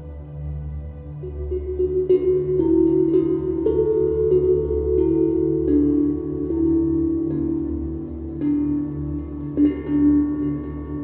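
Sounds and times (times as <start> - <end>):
ambient music sustained tones: 0.0 - 11.0
soft bell-like notes: 0.0 - 11.0.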